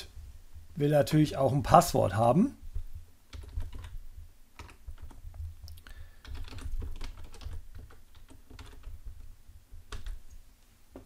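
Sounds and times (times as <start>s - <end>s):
computer keyboard typing: 2.7s - 10.4s.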